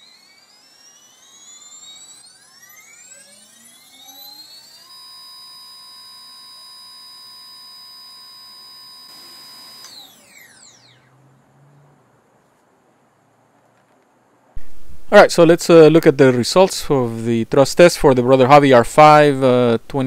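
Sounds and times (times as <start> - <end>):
electric motor whine: 0.0 - 11.4.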